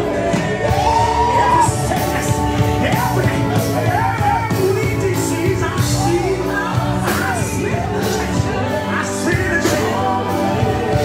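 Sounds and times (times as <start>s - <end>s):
amplified singing: 0.0s - 11.0s
drum kit and band: 0.0s - 11.0s
gospel worship music: 0.0s - 11.0s.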